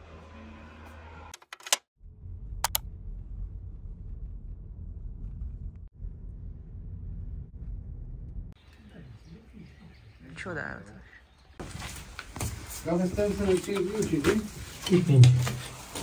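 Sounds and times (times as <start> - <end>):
sharp clicks: 2.6 - 2.8.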